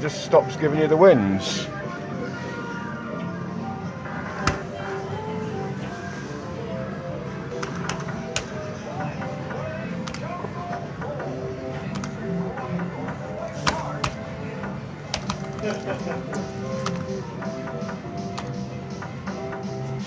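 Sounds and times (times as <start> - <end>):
arcade music: 0.0 - 20.0.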